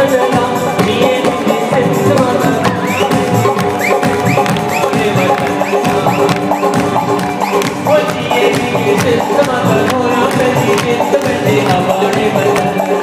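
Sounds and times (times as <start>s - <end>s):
hand drum and percussion beat: 0.0s - 13.0s.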